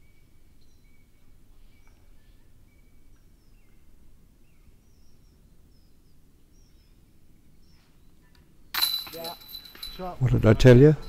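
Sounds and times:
faint outdoor ambience: 0.0 - 11.0.

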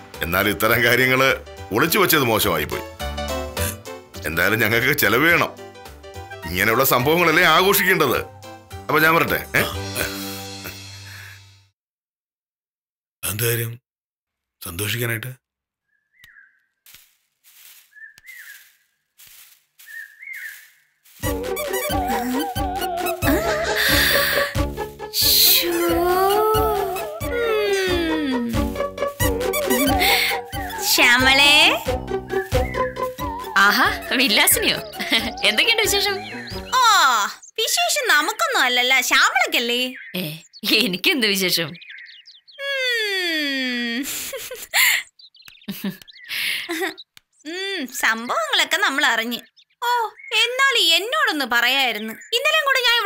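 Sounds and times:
background music with beat: 21.2 - 35.5.

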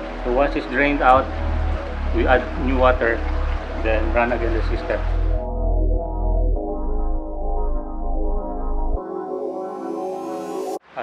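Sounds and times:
synthesizer music with bass line: 0.0 - 10.8.

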